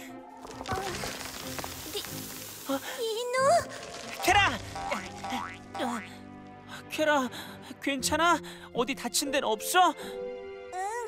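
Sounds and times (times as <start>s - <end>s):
cartoon background music: 0.0s - 11.0s
hiss of settling dust: 1.1s - 3.2s.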